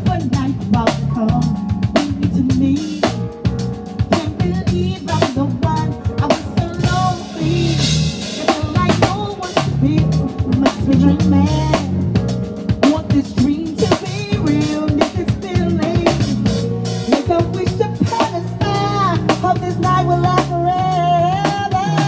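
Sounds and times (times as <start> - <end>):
drum kit hits: 0.0 - 22.0
live band playing soul: 0.0 - 22.0
person singing: 4.1 - 12.0, 12.8 - 22.0.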